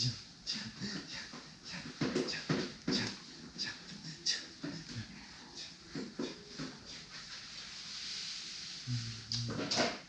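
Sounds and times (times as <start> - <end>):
wordless vocal sounds: 0.0 - 7.2, 8.6 - 9.7.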